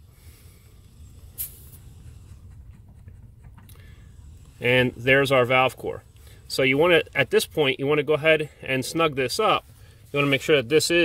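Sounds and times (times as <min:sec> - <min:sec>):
faint rubbing of tool: 0:00.0 - 0:07.8
low steady rumble: 0:00.0 - 0:11.0
brief air hiss: 0:01.3 - 0:02.0.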